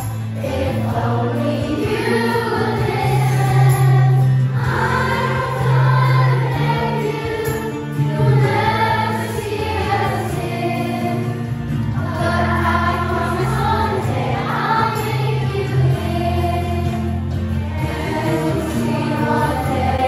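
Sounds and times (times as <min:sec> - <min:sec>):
children singing together: 0:00.0 - 0:20.0.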